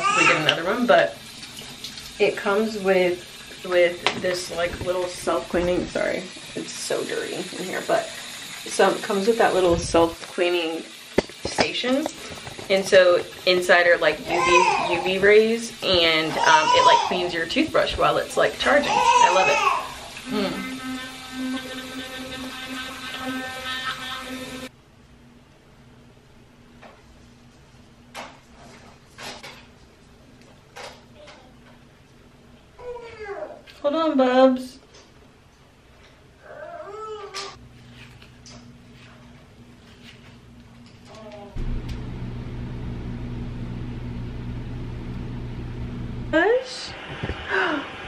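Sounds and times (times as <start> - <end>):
electric toothbrush buzzing: 0.0 - 24.7, 41.6 - 46.4
even hiss: 1.9 - 24.7
small electric motor humming: 18.8 - 24.7, 41.6 - 46.4.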